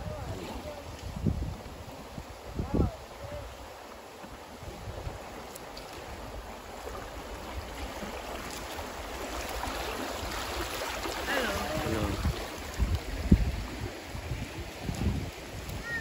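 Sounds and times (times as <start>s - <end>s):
river water rushing: 0.0s - 16.0s.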